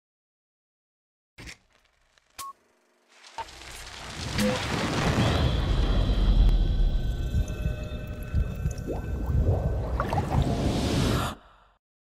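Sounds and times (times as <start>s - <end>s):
steady low rumble: 5.5s - 11.1s.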